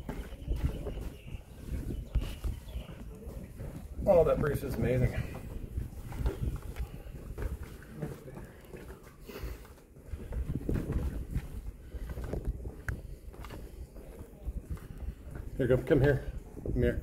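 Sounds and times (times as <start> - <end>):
wind buffeting microphone: 0.0 - 8.7, 9.4 - 17.0
faint voices: 0.0 - 10.0.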